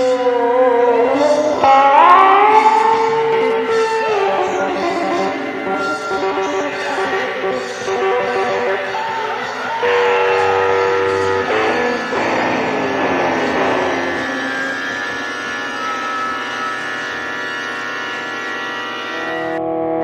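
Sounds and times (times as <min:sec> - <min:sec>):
electric guitar lead: 0:00.0 - 0:20.0.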